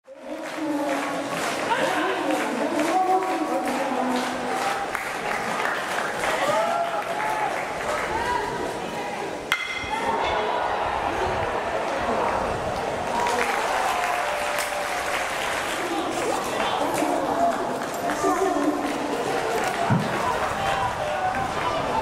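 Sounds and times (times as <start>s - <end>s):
crowd voices and clapping: 0.0s - 22.0s
metal bat hitting ball: 9.5s - 10.1s.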